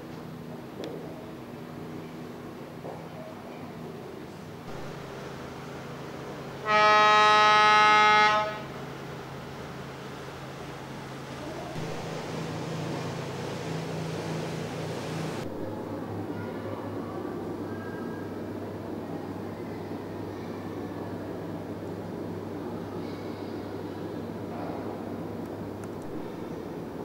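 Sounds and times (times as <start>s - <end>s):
loud horn note: 6.6s - 8.8s.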